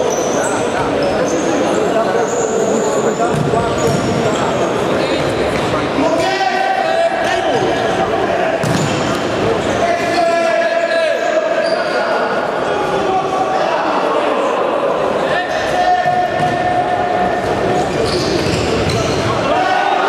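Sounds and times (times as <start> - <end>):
shoe squeaks: 0.0 - 4.7, 11.6 - 12.3, 17.9 - 19.4
players shouting: 18.8 - 20.0.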